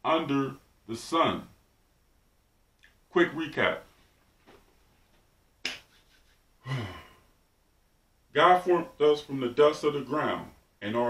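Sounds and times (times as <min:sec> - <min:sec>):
man sighing: 0:06.6 - 0:07.4.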